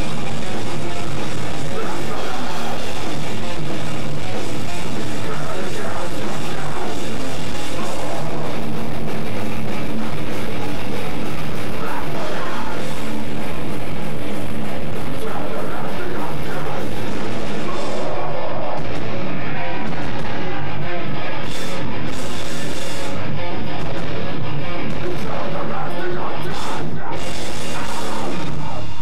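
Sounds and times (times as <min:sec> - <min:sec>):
drum kit: 0:00.0 - 0:29.0
electric guitar: 0:00.0 - 0:29.0
rock band playing live: 0:00.0 - 0:29.0.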